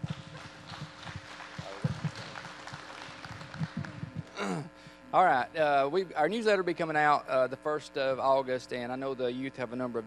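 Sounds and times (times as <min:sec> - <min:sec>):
congregation applauding: 0:00.0 - 0:04.3.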